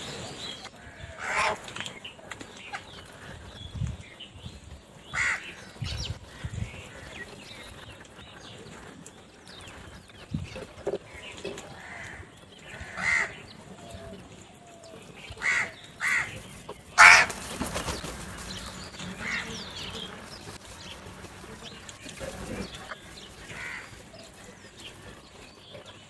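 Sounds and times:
crows cawing: 0.8s - 1.6s, 5.1s - 5.6s, 11.8s - 13.5s, 15.4s - 16.4s, 17.0s - 17.5s, 19.2s - 19.6s, 23.5s - 24.0s.

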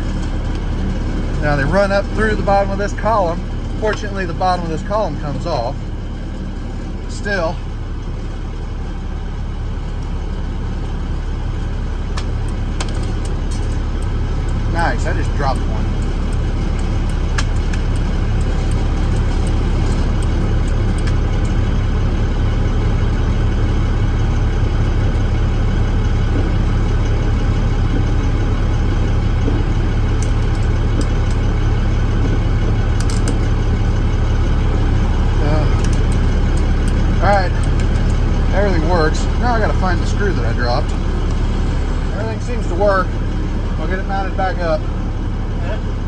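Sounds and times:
truck engine idling: 0.0s - 46.0s.

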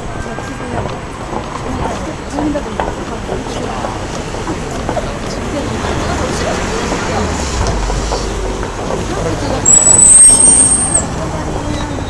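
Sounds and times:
crowd chatter: 0.0s - 12.0s
road traffic: 0.0s - 12.0s
high-pitched brake squeal: 9.6s - 12.0s.

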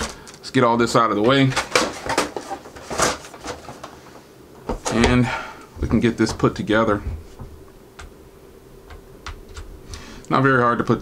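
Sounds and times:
packaging handling clicks and rustles: 0.0s - 0.5s, 1.2s - 4.0s.

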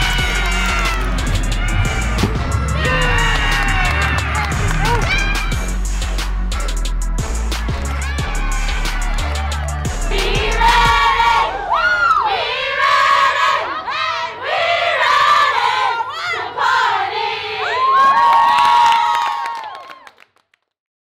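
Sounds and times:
women shouting and cheering: 0.0s - 5.8s, 7.4s - 14.6s, 15.2s - 20.0s
hand clapping: 3.4s - 5.5s.

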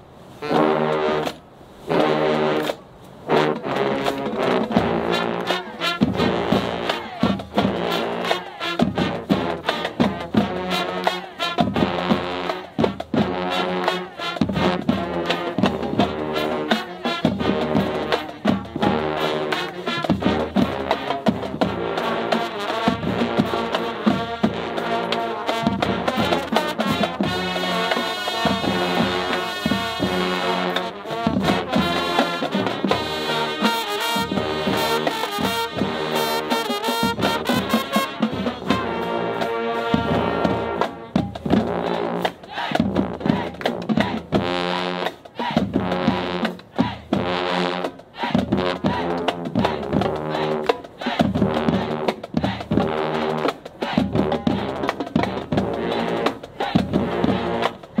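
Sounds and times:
marching band playing: 0.3s - 58.0s.

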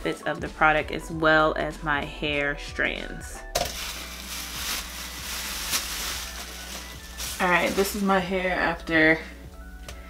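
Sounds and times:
plastic cap crinkling: 3.6s - 8.0s.

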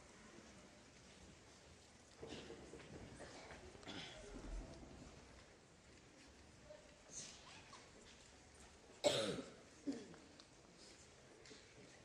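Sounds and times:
person coughing: 9.0s - 10.2s.

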